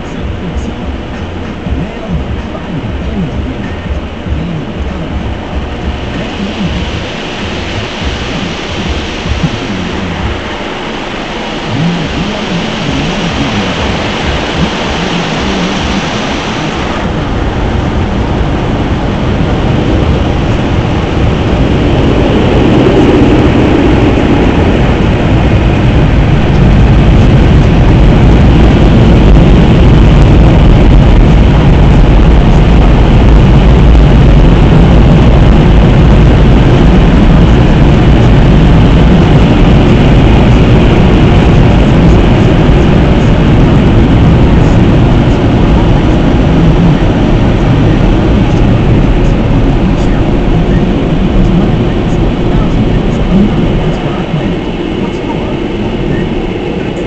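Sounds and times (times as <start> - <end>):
low rumble of drying blowers: 0.0 - 57.0.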